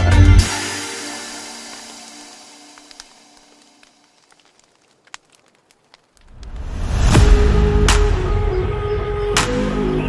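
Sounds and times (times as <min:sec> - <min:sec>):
background music: 0:00.0 - 0:03.8, 0:07.0 - 0:10.0
campfire crackling and popping: 0:00.4 - 0:07.2.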